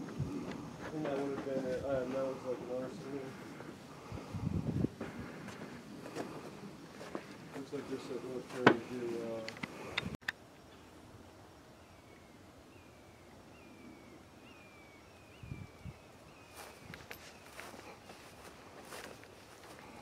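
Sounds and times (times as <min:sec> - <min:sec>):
footsteps on grass: 0:00.0 - 0:04.3, 0:04.9 - 0:09.5, 0:16.4 - 0:20.0.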